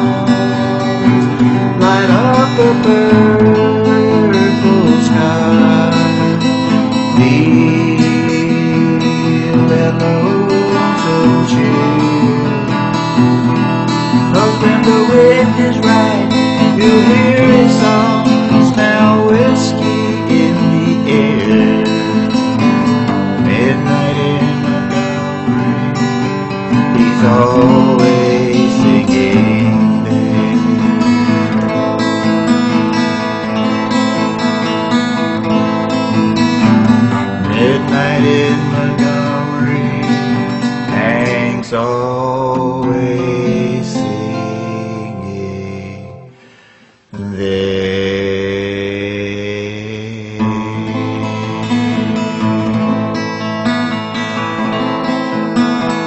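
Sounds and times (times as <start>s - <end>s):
strummed acoustic guitar: 0.0s - 56.0s.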